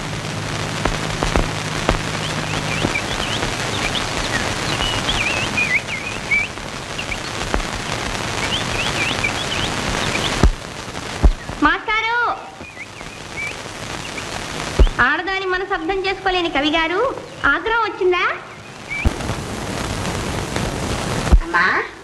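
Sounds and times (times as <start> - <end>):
low hum: 0.0 - 15.0
film soundtrack hiss: 0.0 - 22.0
film soundtrack clicks: 0.6 - 11.7
birds chirping in quick trills: 2.0 - 15.0, 18.4 - 19.2.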